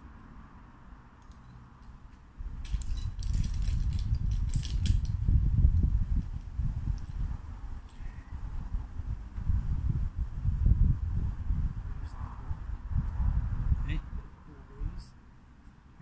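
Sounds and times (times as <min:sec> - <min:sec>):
small clicks: 0:01.2 - 0:05.2
low rumbling on microphone: 0:02.4 - 0:14.3.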